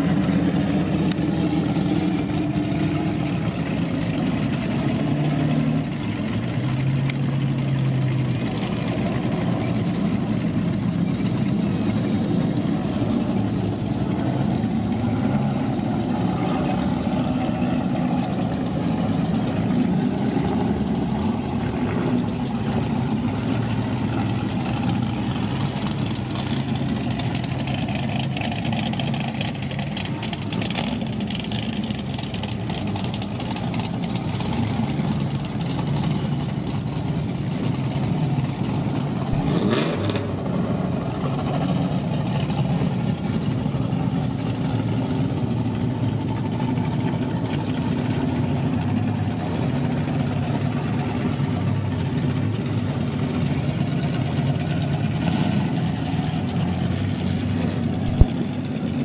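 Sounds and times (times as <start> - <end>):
race car engines at low revs: 0.0 - 59.0.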